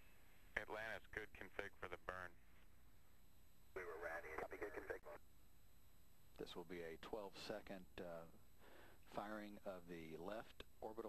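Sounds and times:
low steady hum: 0.0s - 11.0s
speech over radio: 3.8s - 5.2s.

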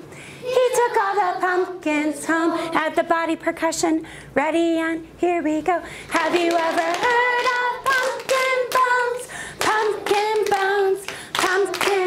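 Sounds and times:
hands clapping in rhythm: 6.2s - 12.0s.

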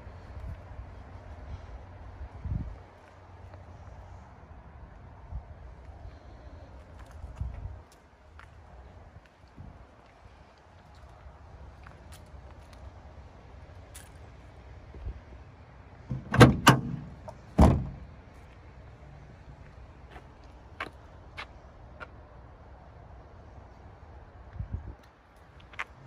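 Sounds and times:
truck latch and panel knocks: 16.1s - 18.0s.

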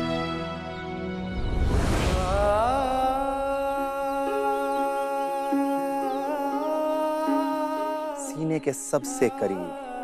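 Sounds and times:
person humming slow melody: 2.4s - 8.4s, 9.3s - 10.0s.

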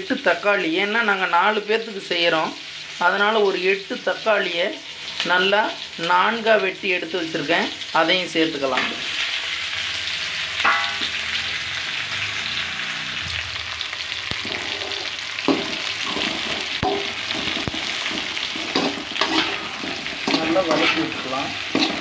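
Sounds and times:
vegetables sizzling in a pan: 0.0s - 22.0s
metal spatula scraping a pan: 10.6s - 11.5s, 14.3s - 22.0s.

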